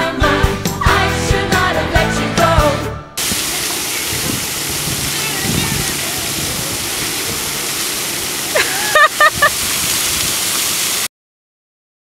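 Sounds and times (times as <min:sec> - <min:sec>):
fountain water splashing: 0:03.2 - 0:11.1.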